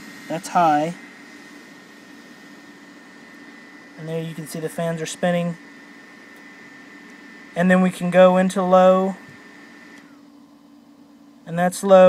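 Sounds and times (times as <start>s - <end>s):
small fans whirring: 0.0s - 12.0s
steady low hum: 0.0s - 12.0s.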